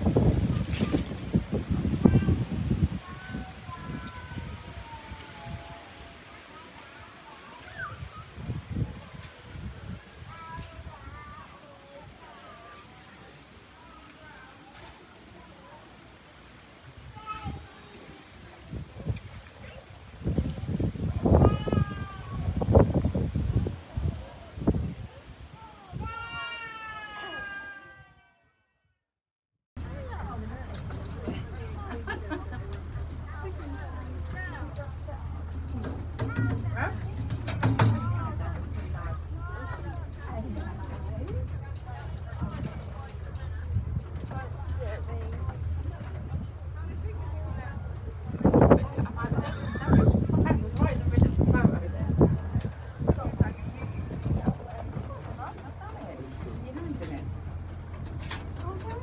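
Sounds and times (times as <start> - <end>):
wind buffeting microphone: 0.0 - 12.6, 16.2 - 27.2, 29.8 - 59.0
meow-like animal call: 26.2 - 28.4.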